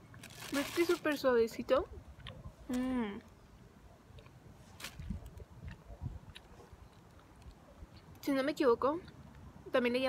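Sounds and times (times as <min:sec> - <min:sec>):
wind buffeting microphone: 0:04.8 - 0:08.2.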